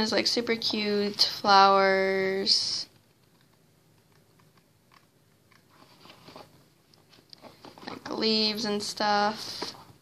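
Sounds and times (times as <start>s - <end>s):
paper sheets rustling and crinkling: 5.7s - 8.2s.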